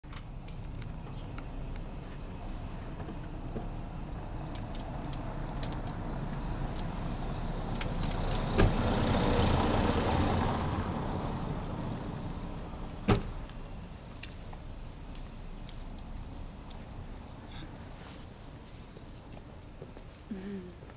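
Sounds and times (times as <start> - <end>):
car passing by: 5.2 - 13.4
car door shutting: 13.0 - 13.4.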